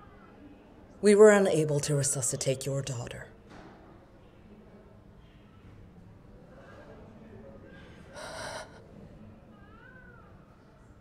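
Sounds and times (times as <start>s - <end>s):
woman sobbing: 8.2s - 8.8s
woman whimpering: 8.2s - 8.8s.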